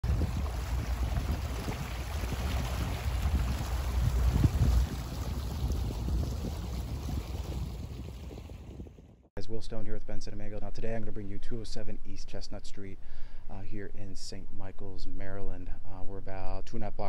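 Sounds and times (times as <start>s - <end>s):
water noise: 0.0s - 9.2s
wind buffeting microphone: 0.0s - 9.3s.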